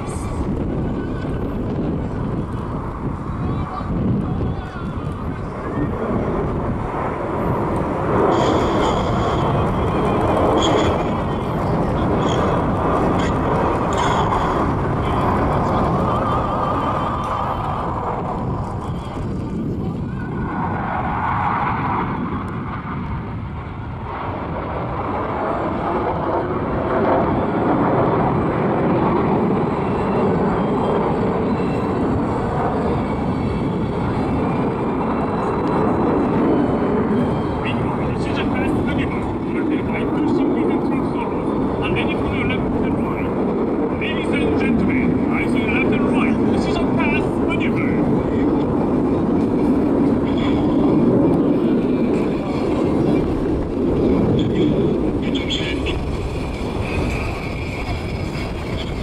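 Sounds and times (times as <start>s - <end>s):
faint voices: 0.0s - 21.2s, 30.2s - 59.0s
loud jet rumble: 0.0s - 59.0s.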